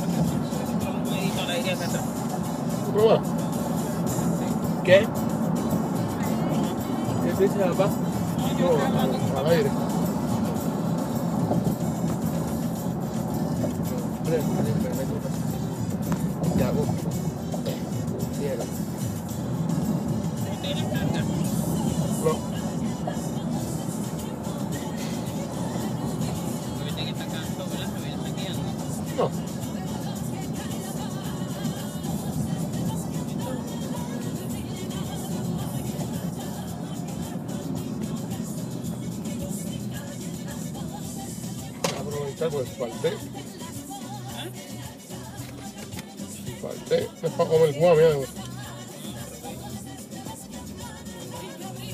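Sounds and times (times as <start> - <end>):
background music: 0.0 - 51.9
car road and engine noise: 0.0 - 51.9.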